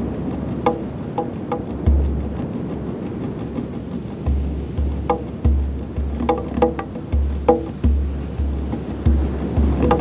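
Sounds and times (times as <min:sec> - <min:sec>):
goblet drum played by hand: 0:00.4 - 0:02.5, 0:03.4 - 0:10.0.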